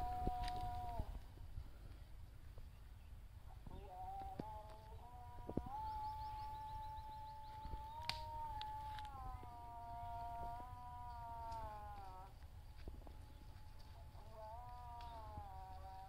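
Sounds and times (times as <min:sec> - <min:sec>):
long high-pitched call: 0:00.0 - 0:01.2, 0:03.8 - 0:16.0.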